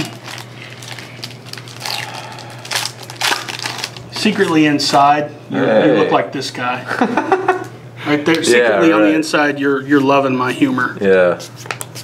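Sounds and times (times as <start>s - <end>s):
wrappers crinkling: 0.0s - 4.7s.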